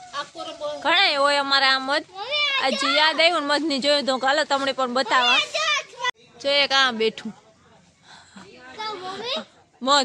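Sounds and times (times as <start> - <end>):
child talking: 2.1 - 3.3, 5.0 - 6.2, 8.7 - 9.5.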